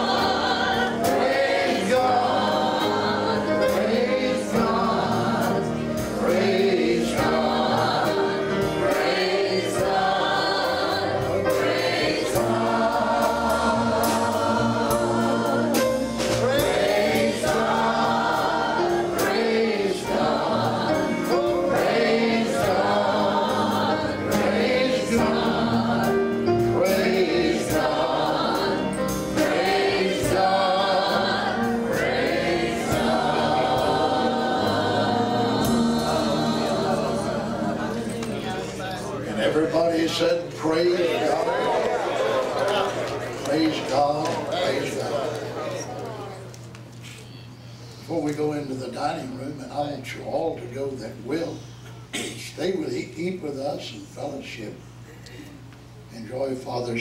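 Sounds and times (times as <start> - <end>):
choir singing gospel song: 0.0 - 46.6.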